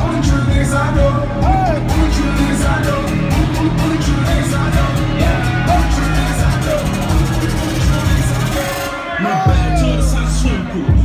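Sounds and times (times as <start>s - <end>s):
hip-hop beat with deep bass: 0.0s - 11.0s.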